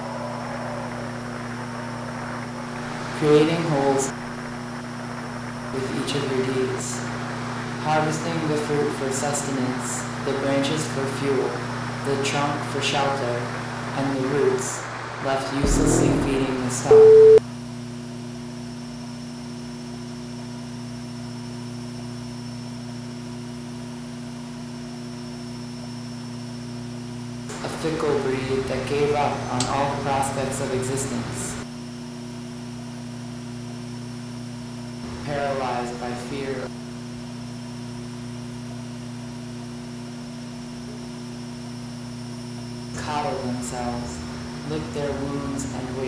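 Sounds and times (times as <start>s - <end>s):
steady low hum: 15.5s - 17.4s.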